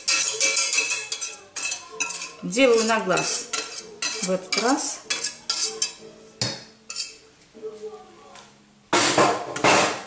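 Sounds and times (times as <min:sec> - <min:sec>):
whisk clinking on pot: 0:00.0 - 0:06.0, 0:06.9 - 0:07.2
whisk scraping metal pot: 0:00.0 - 0:06.0, 0:06.9 - 0:07.2.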